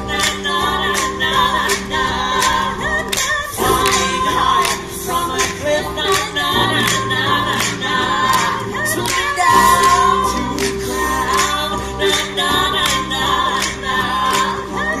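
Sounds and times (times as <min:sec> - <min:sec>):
a cappella choir singing: 0:00.0 - 0:15.0
steady beat of sharp clicks: 0:00.0 - 0:15.0.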